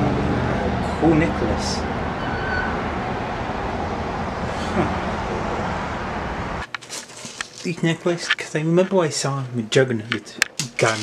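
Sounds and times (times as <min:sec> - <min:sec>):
city traffic noise: 0:00.0 - 0:09.0.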